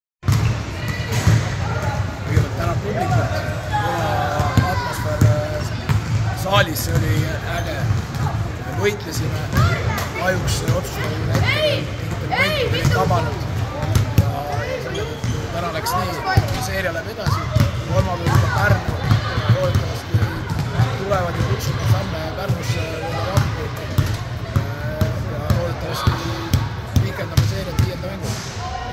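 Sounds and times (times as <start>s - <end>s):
basketballs bouncing on court: 0.2s - 28.3s
man talking: 2.2s - 7.9s, 8.5s - 28.4s.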